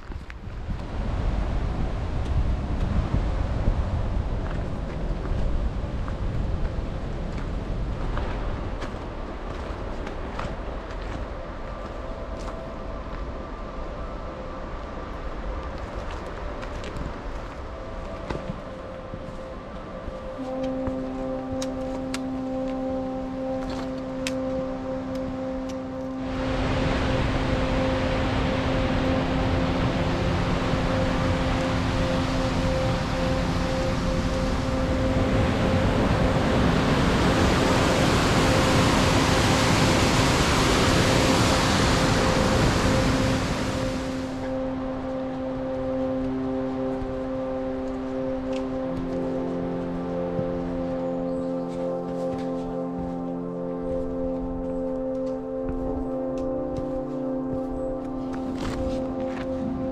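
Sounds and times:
rushing mountain stream: 0.0s - 51.0s
music with long held notes: 0.0s - 59.9s.

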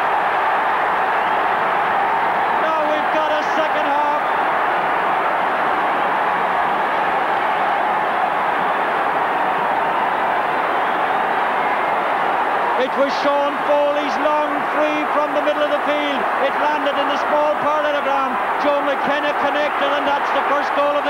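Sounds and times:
stadium crowd roaring: 0.0s - 21.0s.

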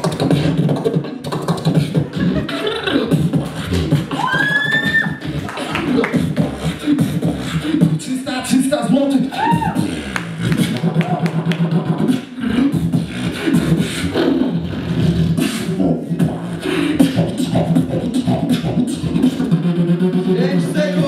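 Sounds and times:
beatboxing through microphone: 0.0s - 21.0s.

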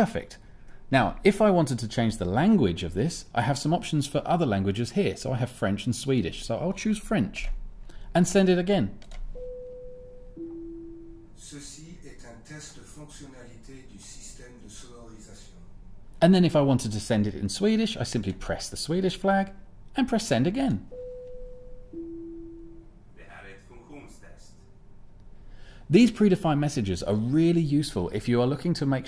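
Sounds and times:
two-tone chime: 9.4s - 11.3s, 20.9s - 22.9s.

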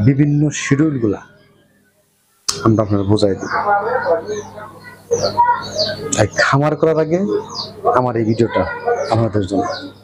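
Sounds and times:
chicks peeping: 2.5s - 10.0s.

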